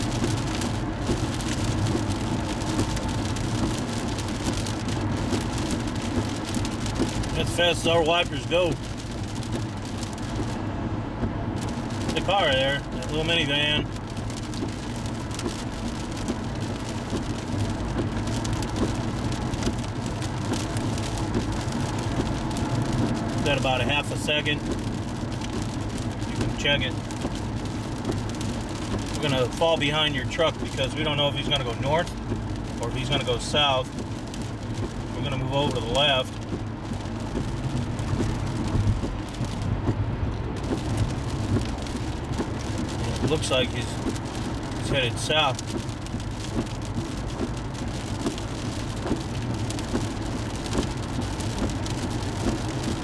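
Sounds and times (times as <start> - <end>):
car engine and tyres rumbling: 0.0 - 53.0
rain tapping on car: 0.0 - 53.0.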